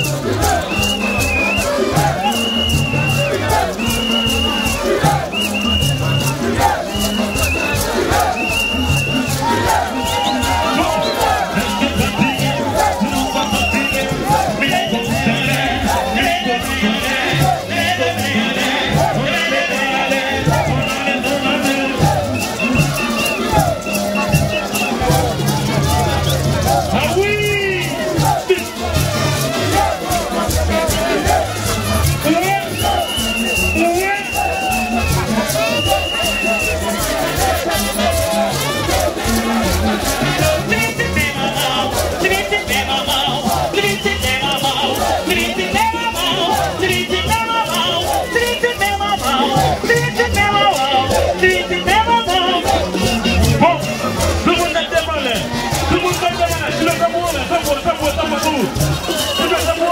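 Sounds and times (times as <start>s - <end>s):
dense crowd: 0.0s - 59.9s
live band music: 0.0s - 59.9s
people singing: 0.0s - 59.9s.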